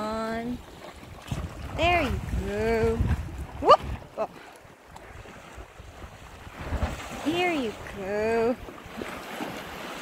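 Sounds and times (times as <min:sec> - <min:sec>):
wind buffeting microphone: 0:00.2 - 0:09.9
waves splashing against rocks: 0:00.3 - 0:10.0.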